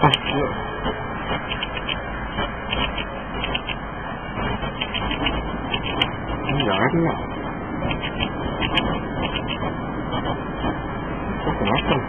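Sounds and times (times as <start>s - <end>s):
city street traffic hum: 0.0s - 12.0s.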